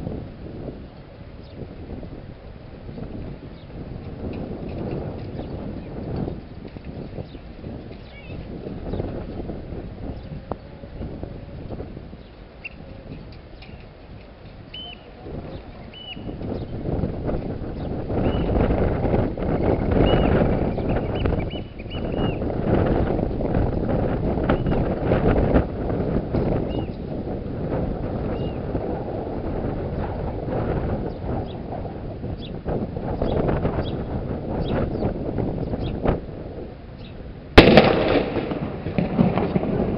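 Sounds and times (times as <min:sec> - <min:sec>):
wind blowing on microphone: 0:00.0 - 0:39.9.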